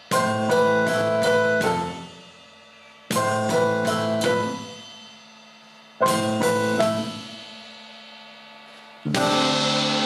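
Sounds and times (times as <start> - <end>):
jazz piano and drums: 0.0 - 5.1, 6.0 - 7.6, 8.9 - 10.0
cymbal strokes: 0.0 - 10.0.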